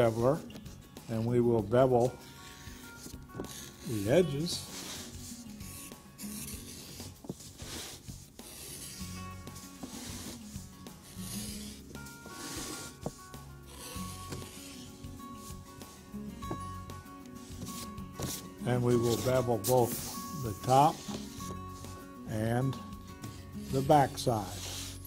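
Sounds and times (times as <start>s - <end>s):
soft background music: 0.0s - 25.0s
edge beveler shaving leather: 1.8s - 16.7s, 17.4s - 25.0s.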